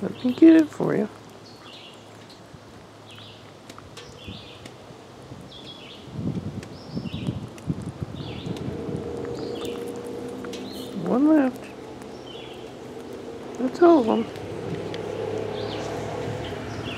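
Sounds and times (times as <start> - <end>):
bird chirping: 1.4 - 2.2, 3.0 - 4.7, 5.5 - 6.1, 8.2 - 8.6, 9.2 - 14.4, 15.0 - 16.9.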